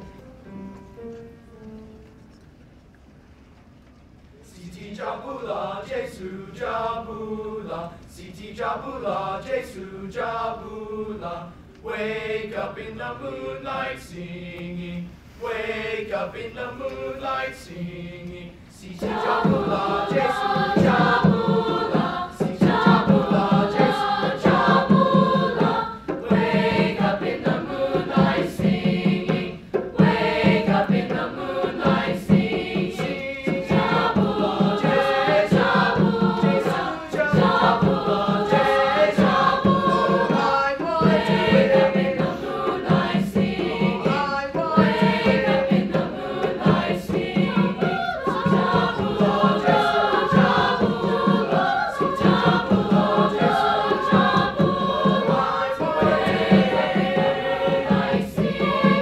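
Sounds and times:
upright piano: 0.0s - 3.0s
mixed choir singing: 4.5s - 59.0s.

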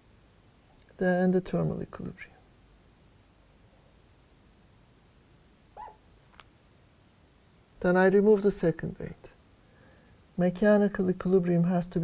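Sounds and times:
marker squeaking on glass: 5.8s - 6.0s.

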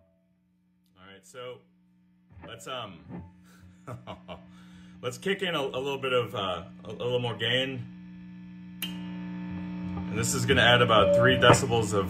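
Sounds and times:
guitar amplifier hum: 0.0s - 12.0s
man laughing quietly: 3.7s - 4.6s.

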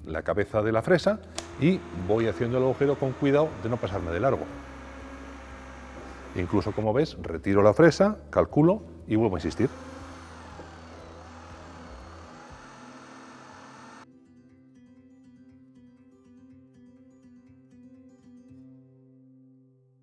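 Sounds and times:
electric drill boring into wood: 1.3s - 7.0s, 9.4s - 14.0s
soft plucked guitar music: 14.1s - 20.0s.

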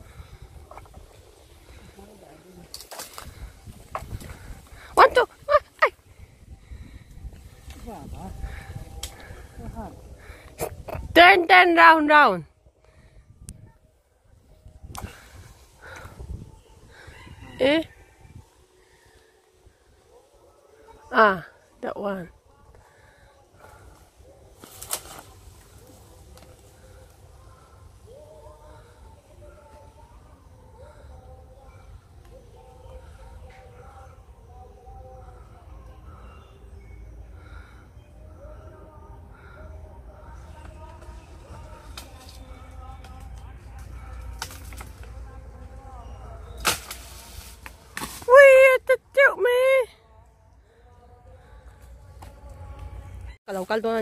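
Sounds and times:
bamboo pole striking seed pods: 2.6s - 4.4s, 24.6s - 26.7s, 40.7s - 45.2s, 46.5s - 48.4s
bamboo pole knocking branch: 24.6s - 25.3s, 43.0s - 45.1s, 46.6s - 48.3s.

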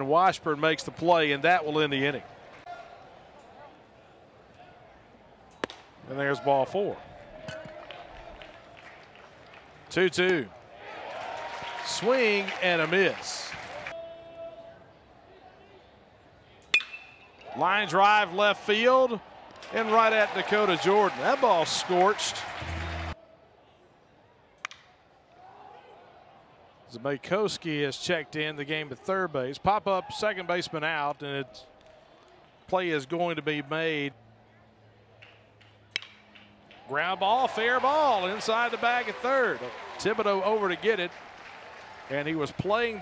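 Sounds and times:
metal bat hitting ball: 36.0s - 36.5s.

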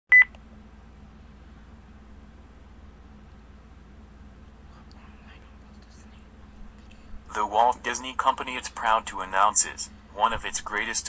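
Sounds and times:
faint low hum: 0.1s - 11.0s.

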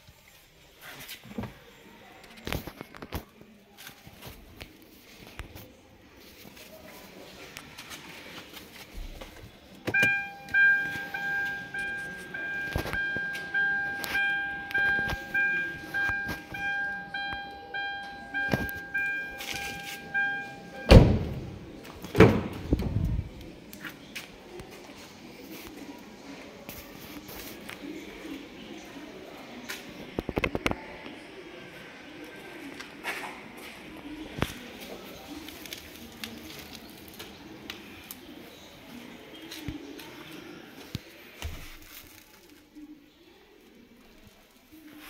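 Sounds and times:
car warning chime dinging: 9.9s - 21.7s
steady tone: 10.0s - 21.6s.

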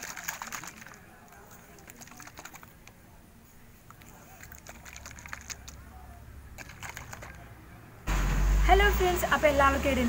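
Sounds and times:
plastic bottles clicking and tapping: 6.6s - 7.4s.

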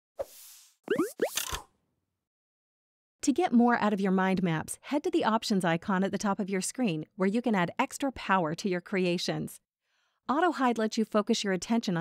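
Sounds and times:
rising bloop blips: 0.9s - 1.4s.

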